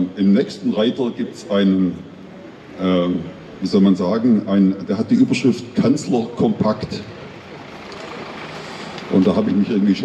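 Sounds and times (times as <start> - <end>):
car driving slowly past: 4.9 - 10.0.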